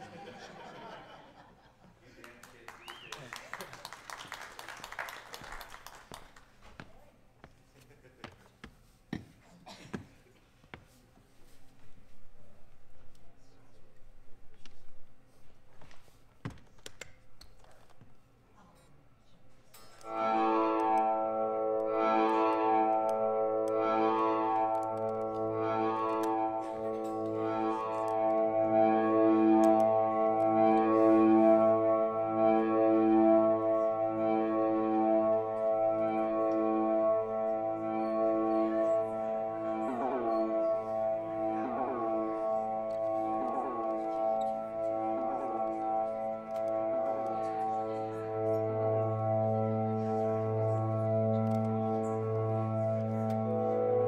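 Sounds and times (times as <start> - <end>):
ambient electric guitar drone: 20.0 - 54.0.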